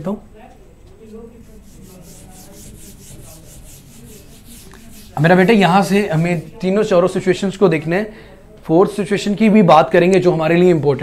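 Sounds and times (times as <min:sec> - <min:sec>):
whiteboard being wiped: 0:01.4 - 0:06.6.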